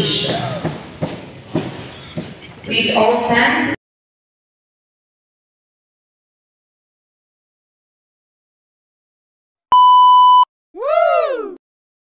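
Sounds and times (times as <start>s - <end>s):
high-pitched bleep tone: 9.7s - 10.5s.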